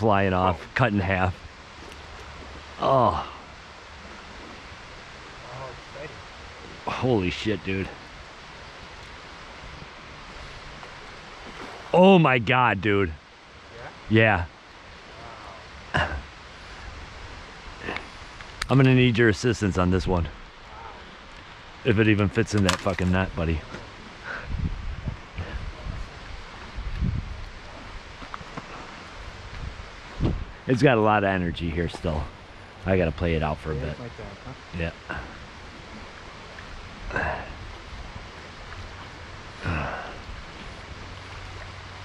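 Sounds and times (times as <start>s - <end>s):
river current rushing: 0.0s - 42.0s
wind on microphone: 22.7s - 30.8s
dull low thumps: 24.4s - 26.0s, 29.3s - 30.6s.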